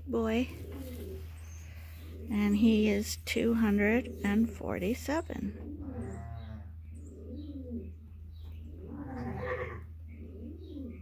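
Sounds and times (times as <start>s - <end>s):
steady low hum: 0.0s - 9.2s
low cooing calls: 0.3s - 3.0s, 5.5s - 11.0s
sheep bleating: 9.0s - 9.8s.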